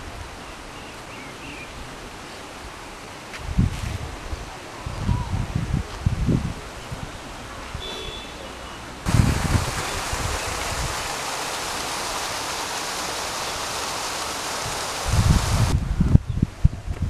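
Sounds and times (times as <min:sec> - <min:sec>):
stream rushing over rocks: 0:06.6 - 0:15.8.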